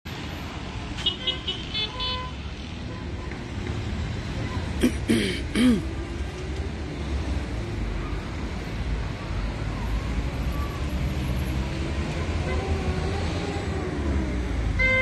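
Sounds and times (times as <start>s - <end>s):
street traffic rumbling: 0.1s - 15.0s.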